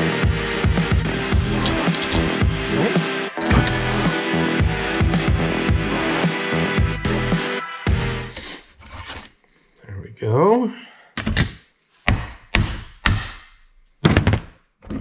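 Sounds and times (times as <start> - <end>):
background music: 0.0 - 8.6.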